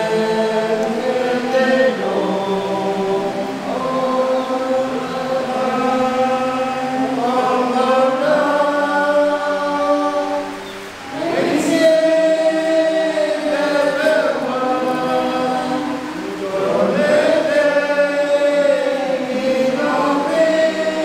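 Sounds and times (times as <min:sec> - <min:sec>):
men singing church song: 0:00.0 - 0:21.0.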